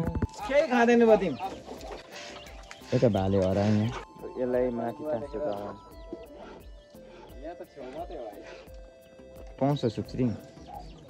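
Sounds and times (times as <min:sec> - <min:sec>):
farmyard animal cry: 0:00.3 - 0:04.1, 0:05.0 - 0:08.7, 0:10.4 - 0:11.0.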